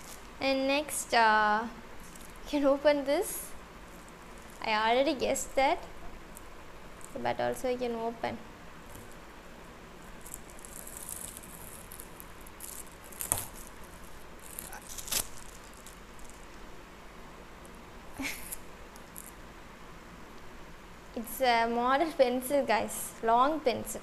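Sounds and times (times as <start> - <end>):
wrapping rustling and crinkling: 0.0 - 0.4, 2.0 - 5.6, 9.9 - 16.6.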